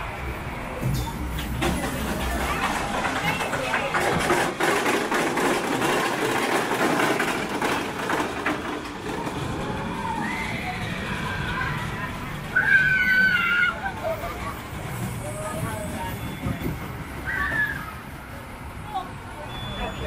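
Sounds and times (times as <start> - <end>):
roller coaster rattling and clicking: 0.8 - 19.0.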